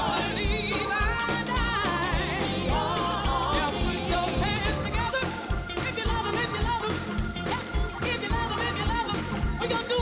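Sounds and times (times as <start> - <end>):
full band with drum beat: 0.0 - 10.0
singer with vibrato: 0.0 - 10.0.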